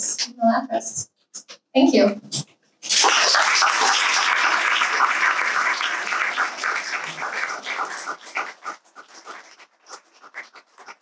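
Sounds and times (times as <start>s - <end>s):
audience applauding: 2.9s - 11.0s.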